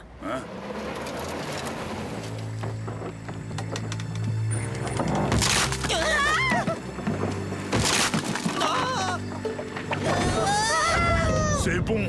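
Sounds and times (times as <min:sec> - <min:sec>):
low drone of tense music: 0:00.0 - 0:12.0.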